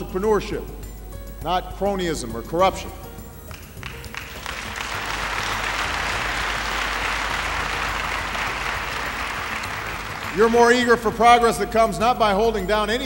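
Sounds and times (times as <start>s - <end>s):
audience applauding: 3.5s - 11.1s.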